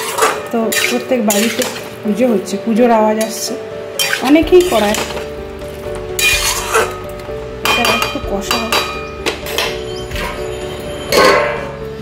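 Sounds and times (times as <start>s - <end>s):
metal spatula scraping a pan: 0.0s - 2.0s, 4.0s - 5.3s, 6.2s - 7.1s, 8.7s - 11.8s
background music: 0.0s - 12.0s.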